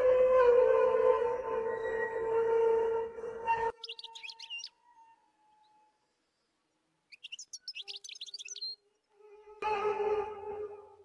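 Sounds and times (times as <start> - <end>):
songbird chirping: 3.7 - 9.1.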